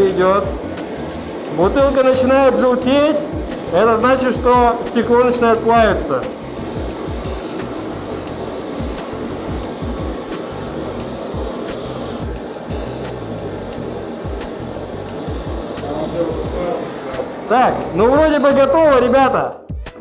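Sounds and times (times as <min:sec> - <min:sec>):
background music with a beat: 0:00.0 - 0:02.2, 0:03.2 - 0:05.0, 0:05.7 - 0:20.0
gas torches hissing: 0:00.0 - 0:19.6.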